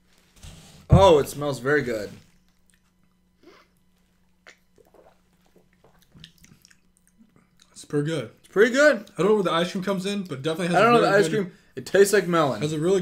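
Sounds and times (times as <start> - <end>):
sipping and swallowing: 4.4 - 7.8.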